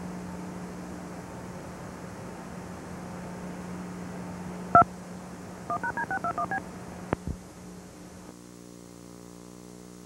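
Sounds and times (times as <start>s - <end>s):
tape hum and hiss: 4.7s - 5.0s, 5.6s - 10.0s
touch-tone beeps: 5.7s - 6.6s.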